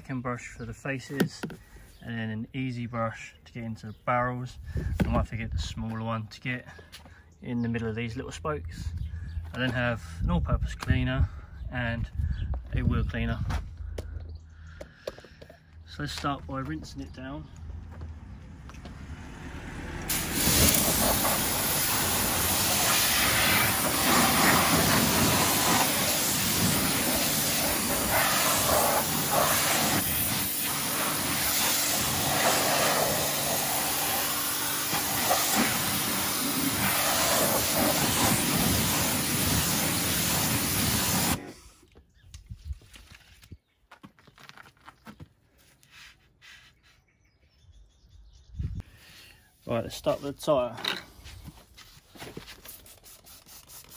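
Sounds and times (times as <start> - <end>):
pressure washer spraying: 20.1 - 41.4.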